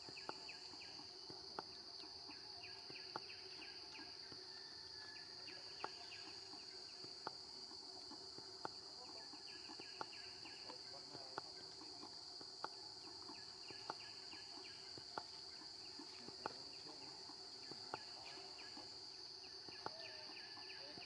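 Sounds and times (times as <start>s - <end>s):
insects droning: 0.0s - 21.0s.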